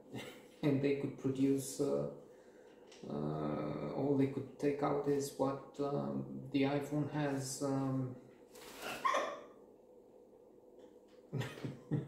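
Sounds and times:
parrot squawk: 8.8 - 9.5.

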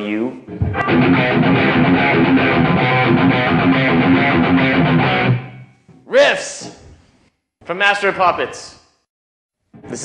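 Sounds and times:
electric guitar riff: 0.7 - 5.7.

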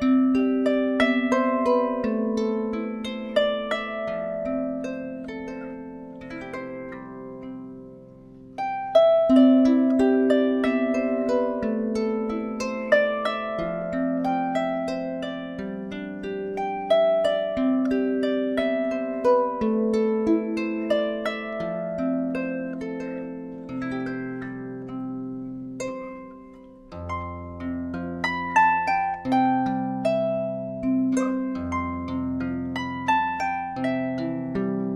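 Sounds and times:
plucked harp melody: 0.0 - 34.9.

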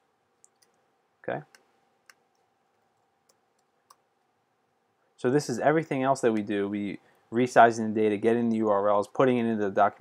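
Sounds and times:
keyboard and mouse clicks: 0.4 - 0.8, 1.4 - 4.1.

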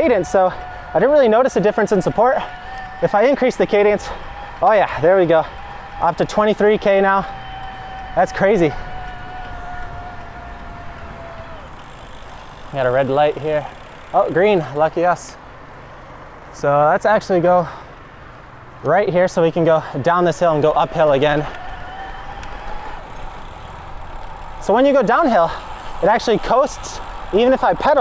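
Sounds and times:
electric bike motor whining: 0.0 - 14.9, 20.7 - 28.0
wind and road noise: 0.0 - 28.0.

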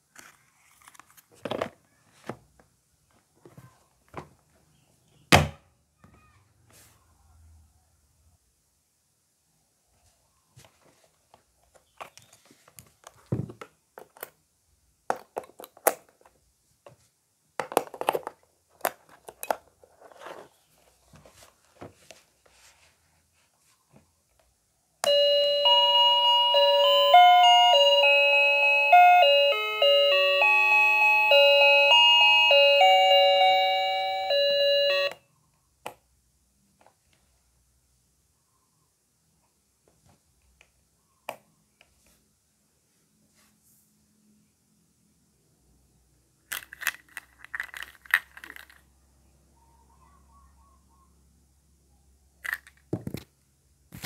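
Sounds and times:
plastic toys clattering: 15.1 - 16.4, 17.6 - 20.5, 46.5 - 48.9, 52.4 - 53.4
tinny electronic beeping melody: 25.0 - 35.2.

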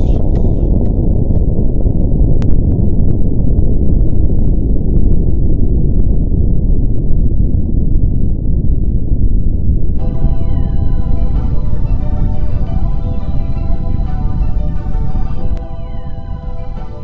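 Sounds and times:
low rumble: 0.0 - 17.0.

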